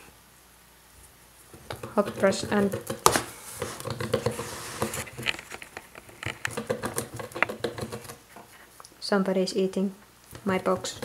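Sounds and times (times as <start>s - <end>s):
rabbit gnawing cardboard: 1.4s - 8.5s, 10.3s - 11.0s
paper pad scraping cardboard: 1.8s - 5.3s.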